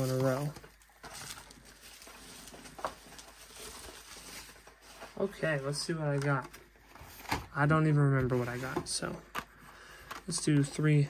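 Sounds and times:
bubble wrap rustling: 0.0 - 7.3.

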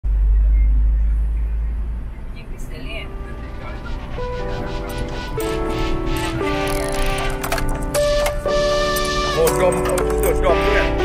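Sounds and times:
car driving on road: 0.1 - 10.4
background music with held notes: 2.6 - 11.0.

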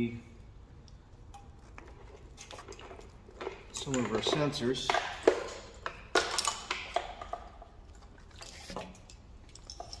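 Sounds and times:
plastic connectors clicking and rustling: 0.8 - 7.7.

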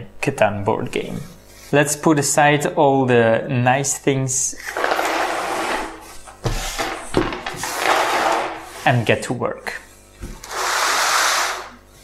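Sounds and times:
plastic pieces sliding on wood: 4.6 - 8.9, 10.4 - 11.8.

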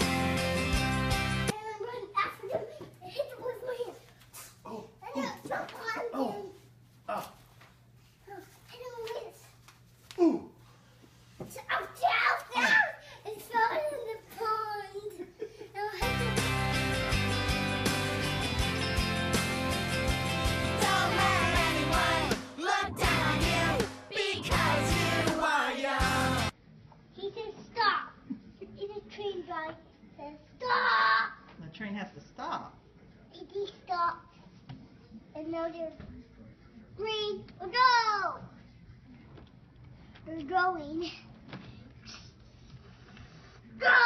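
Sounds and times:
young child talking: 1.5 - 4.1, 5.0 - 6.6, 8.3 - 9.5, 11.5 - 16.0
boy crying out: 10.2 - 10.5, 12.6 - 13.0
boy's sing-song voice: 20.8 - 26.5.

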